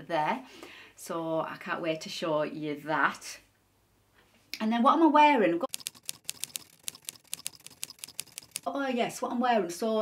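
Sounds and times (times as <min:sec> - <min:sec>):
keyboard typing clicks: 0:05.7 - 0:08.7.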